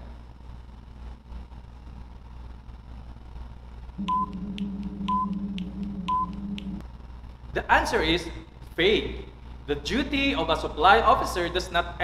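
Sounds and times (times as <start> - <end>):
timer ticks: 4.0 - 6.8
low electronic drone: 4.0 - 6.9.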